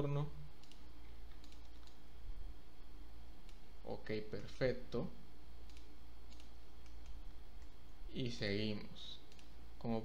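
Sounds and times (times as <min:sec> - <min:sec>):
steady low hum: 0:00.0 - 0:10.0
keyboard and mouse clicks: 0:00.6 - 0:02.0, 0:05.6 - 0:07.8, 0:09.2 - 0:09.6.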